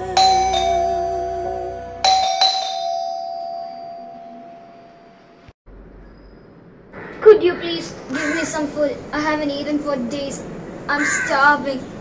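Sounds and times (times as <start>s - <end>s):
doorbell ding-dong chime: 0.2s - 1.4s, 2.0s - 5.1s.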